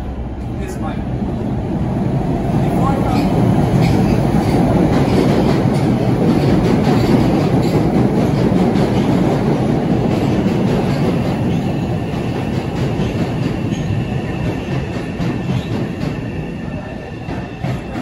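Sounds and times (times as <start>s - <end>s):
subway train wheels rumbling: 0.0s - 18.0s.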